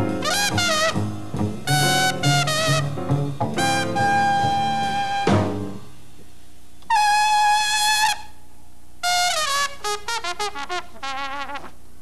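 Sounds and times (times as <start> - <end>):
trumpet playing slow jazz: 0.0 - 6.1, 6.8 - 8.4, 9.0 - 11.9.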